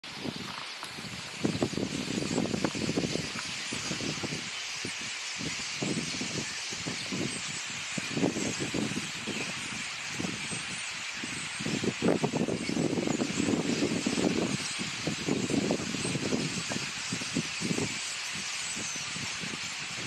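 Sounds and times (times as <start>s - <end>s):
steady high hiss: 0.0s - 20.0s
wind buffeting microphone: 0.0s - 20.0s.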